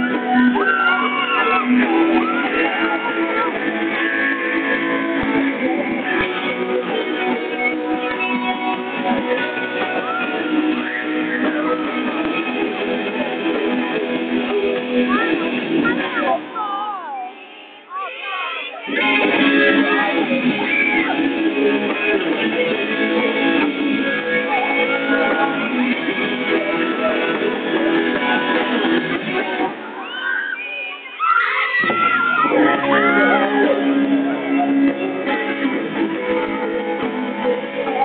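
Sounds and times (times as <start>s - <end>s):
strummed electric guitar: 0.0s - 16.2s
electric guitar line: 0.0s - 16.6s, 18.9s - 29.9s, 31.8s - 38.0s
pop-rock band music: 0.0s - 16.6s, 18.9s - 29.9s, 31.6s - 38.0s.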